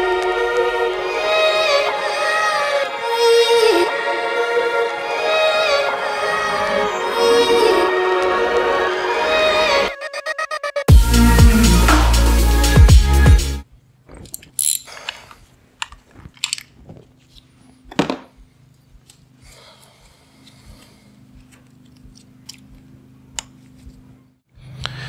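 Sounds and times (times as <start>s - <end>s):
electronic music: 0.0s - 13.6s
crackly handling noises: 13.8s - 24.2s.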